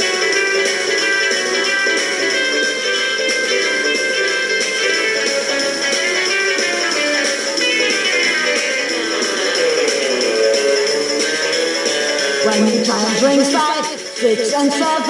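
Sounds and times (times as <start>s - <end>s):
rock and roll band with guitar: 0.0s - 15.0s.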